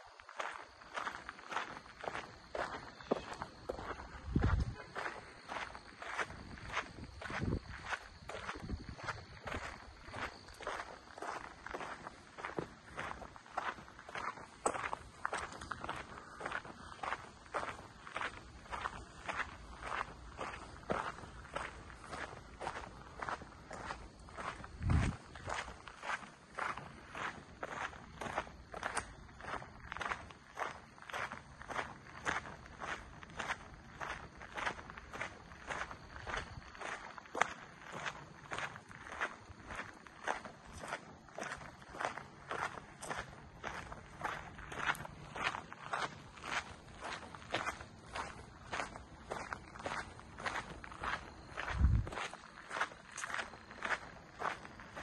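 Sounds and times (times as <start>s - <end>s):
footsteps on dirt trail: 0.0s - 55.0s.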